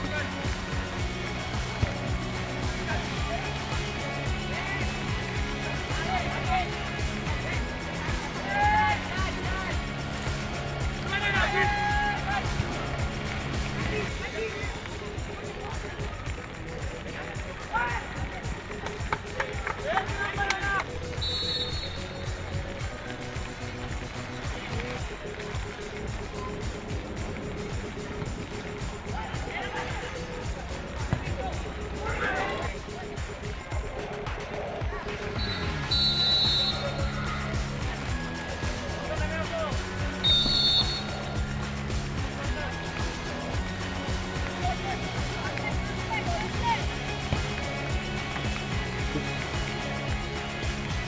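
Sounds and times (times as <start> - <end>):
music with sliding bass: 0.0 - 51.0
players shouting: 0.1 - 14.8, 35.1 - 51.0
referee's whistle blast: 21.1 - 22.4, 35.4 - 37.1, 40.2 - 41.3.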